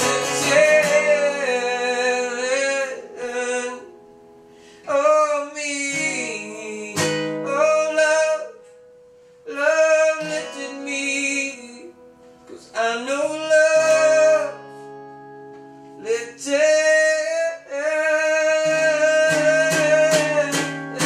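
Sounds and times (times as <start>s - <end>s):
man singing: 0.0s - 4.0s, 4.8s - 8.7s, 9.5s - 14.9s, 16.0s - 21.0s
acoustic guitar: 0.0s - 21.0s.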